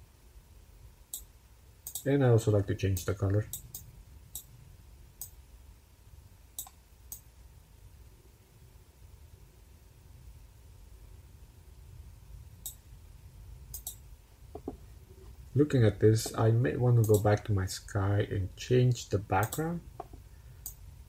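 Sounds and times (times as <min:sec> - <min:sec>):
low steady background hum: 0:00.0 - 0:21.0
computer mouse clicking: 0:01.1 - 0:02.1, 0:03.0 - 0:04.5, 0:06.6 - 0:07.3, 0:13.7 - 0:14.0, 0:17.0 - 0:17.3, 0:19.4 - 0:20.8.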